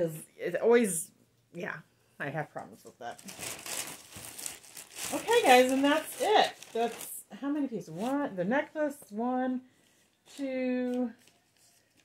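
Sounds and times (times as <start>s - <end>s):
packaging crinkling: 3.2s - 7.2s, 10.3s - 12.0s.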